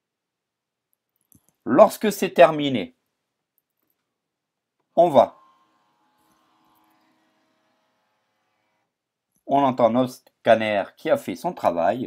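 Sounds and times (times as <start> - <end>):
faint scanner motor whine: 4.9 - 9.0.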